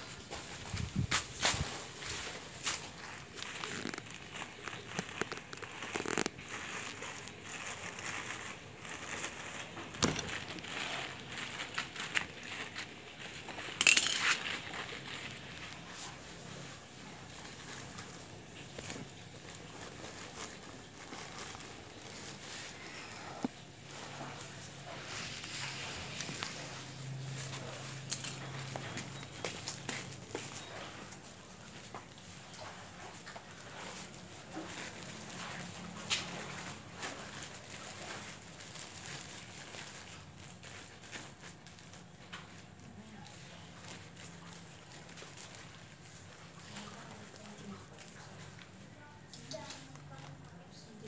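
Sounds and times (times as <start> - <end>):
hands scooping soil: 0.0 - 48.8
plastic bags rustling: 0.0 - 51.0.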